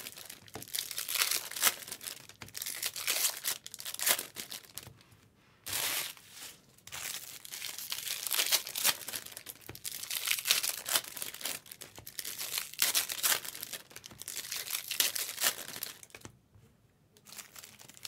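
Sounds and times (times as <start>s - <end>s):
foil wrappers crinkling and tearing: 0.0s - 4.9s, 6.9s - 16.3s, 17.3s - 18.0s.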